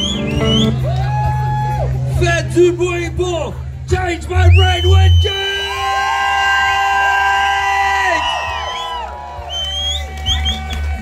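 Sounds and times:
crowd whooping: 0.0s - 2.2s, 4.4s - 11.0s.

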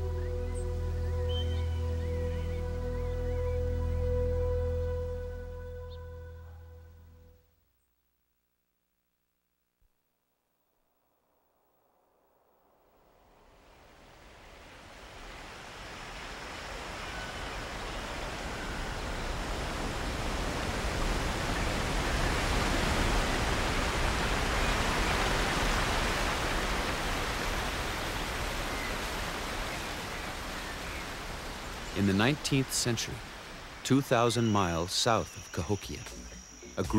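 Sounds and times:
waterfall rushing: 14.2s - 36.9s.

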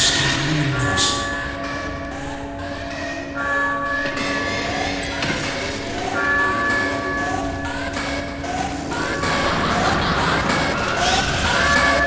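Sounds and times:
synth drone: 0.0s - 12.0s.

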